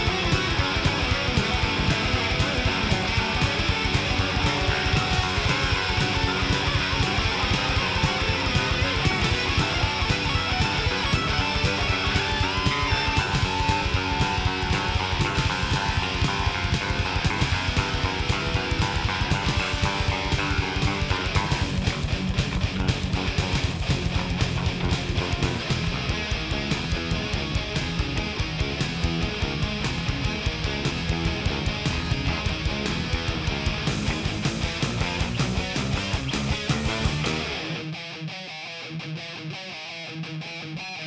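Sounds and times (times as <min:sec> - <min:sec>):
fast driving drums: 0:00.0 - 0:37.8
bass guitar: 0:00.0 - 0:41.0
distorted electric guitars: 0:00.0 - 0:41.0.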